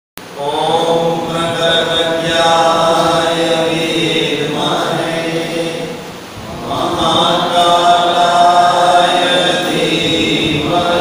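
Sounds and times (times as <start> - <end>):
person chanting a mantra: 0.2 - 11.0.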